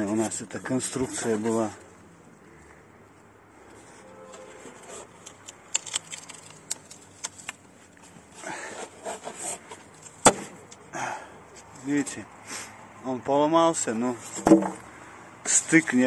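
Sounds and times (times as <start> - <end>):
sharp clicks of foam: 5.2 - 7.6.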